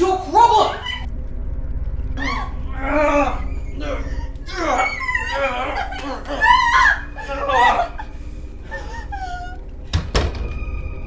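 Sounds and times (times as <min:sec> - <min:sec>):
person crying out: 0:02.2 - 0:08.1.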